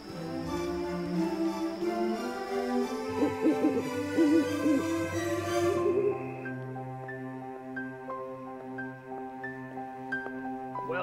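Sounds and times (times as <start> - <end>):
owl hooting: 0.0 - 6.9
background music: 0.0 - 11.0.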